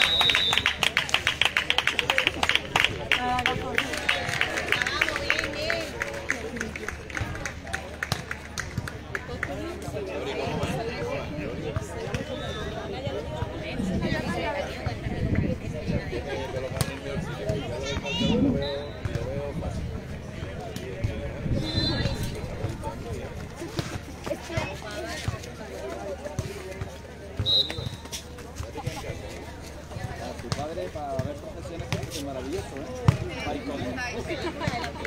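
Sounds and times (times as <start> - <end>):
people chattering: 0.0 - 35.0.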